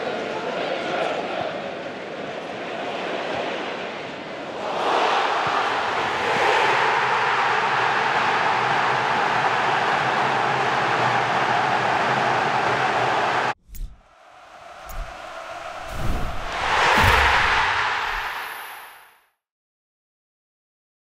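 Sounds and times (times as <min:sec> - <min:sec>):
stadium crowd cheering: 0:00.0 - 0:19.2.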